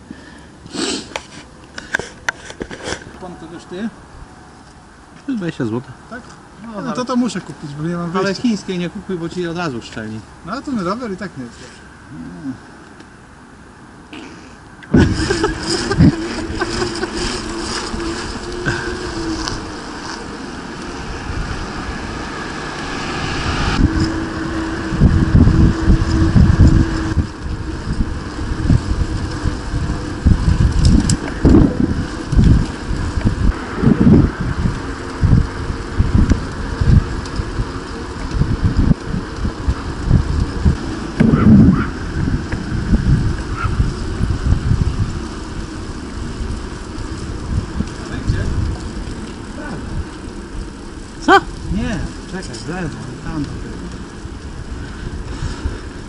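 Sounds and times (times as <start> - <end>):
steady hum: 14.8 - 45.6
wind buffeting microphone: 14.9 - 56.0.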